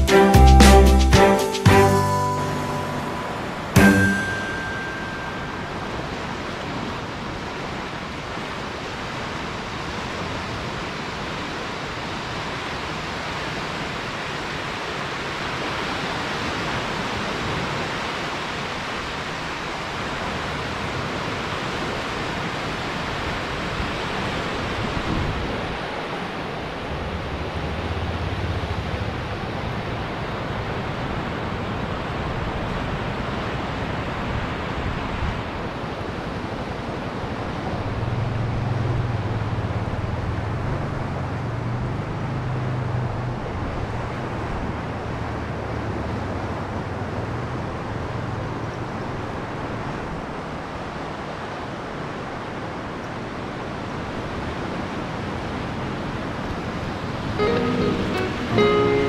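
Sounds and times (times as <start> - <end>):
waves breaking on beach: 1.5 - 59.0
wind rumbling on microphone: 22.6 - 41.2.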